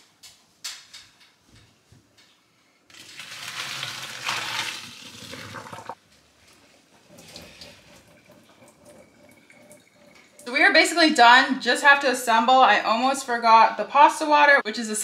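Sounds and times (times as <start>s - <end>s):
water rushing into a sink: 2.9s - 6.0s, 7.0s - 10.6s
quiet water hiss: 2.9s - 10.8s.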